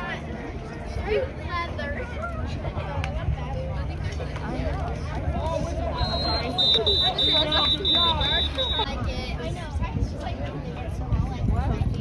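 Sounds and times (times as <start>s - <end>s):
background voices chattering: 0.0s - 12.0s.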